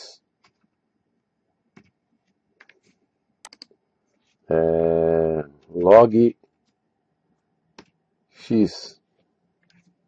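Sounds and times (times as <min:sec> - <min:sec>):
faint keyboard keystrokes: 0:00.4 - 0:00.8, 0:01.7 - 0:04.4.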